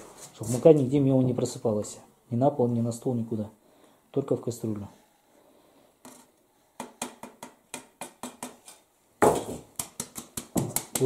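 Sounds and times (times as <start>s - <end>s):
sieve rim tapping on pot: 9.7s - 11.0s.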